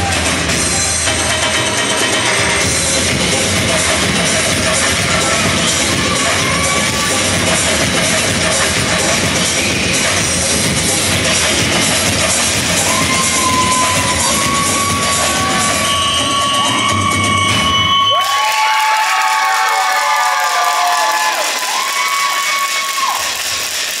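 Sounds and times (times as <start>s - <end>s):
loud samba music: 0.0s - 24.0s
audience cheering and whooping: 4.0s - 8.0s, 12.4s - 23.8s.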